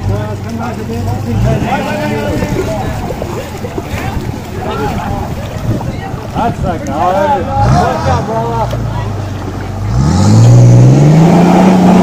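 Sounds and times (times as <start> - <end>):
people talking and calling: 0.0 - 10.6.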